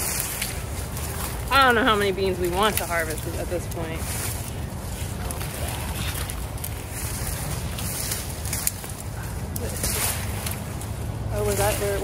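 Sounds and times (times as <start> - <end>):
rustling and crackling bean vines: 0.0 - 12.0
wind rumble on microphone: 0.0 - 12.0.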